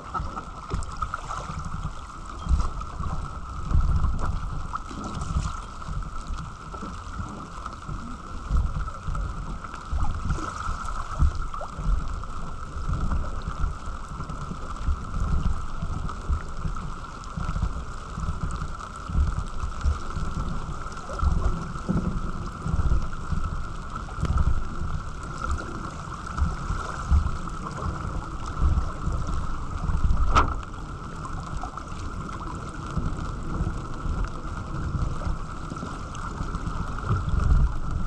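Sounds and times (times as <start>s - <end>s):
wind buffeting microphone: 0.0s - 13.8s, 14.6s - 38.0s
water rushing along a hull: 0.0s - 38.0s.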